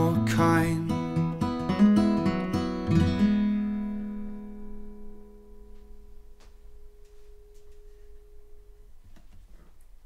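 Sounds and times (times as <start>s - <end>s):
acoustic guitar chord ringing: 0.0s - 9.2s.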